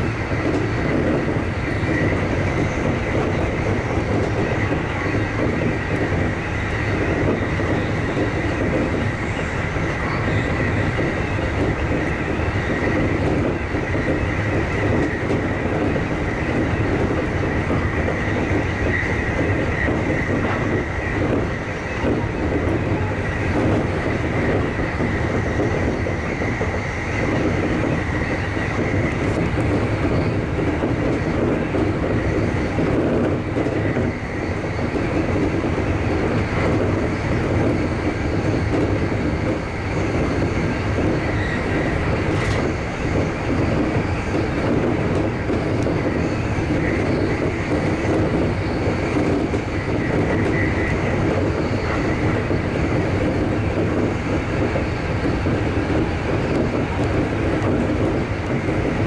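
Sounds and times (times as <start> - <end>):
clack over track: 0.0 - 59.0
train wheels rumbling on rail: 0.0 - 59.0.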